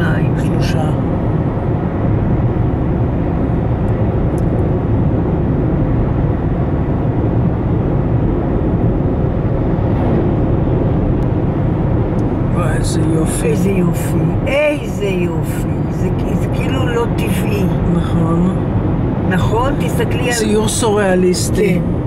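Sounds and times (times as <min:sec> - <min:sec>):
road noise inside car: 0:00.0 - 0:22.0.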